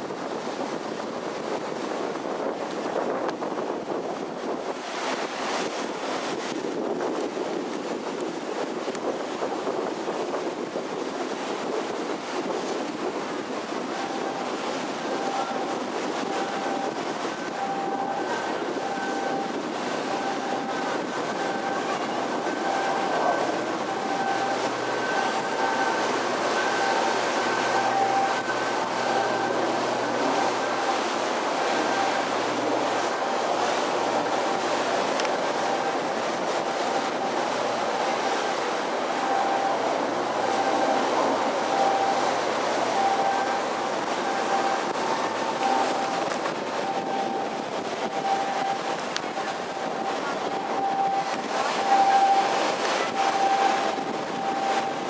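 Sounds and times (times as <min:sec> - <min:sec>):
ship engine running: 0:00.0 - 0:55.0
faint high whine: 0:14.0 - 0:55.0.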